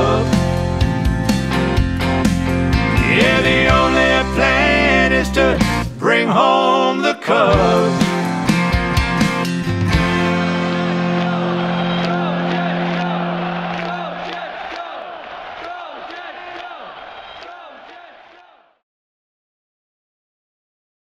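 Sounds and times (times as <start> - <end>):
guitar and bass chord: 0.0 - 6.0, 7.6 - 14.2
crowd cheering and whooping: 10.2 - 18.7.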